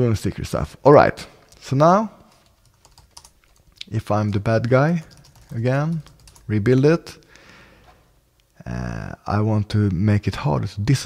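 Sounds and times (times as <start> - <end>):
keyboard keystrokes: 5.0 - 6.5.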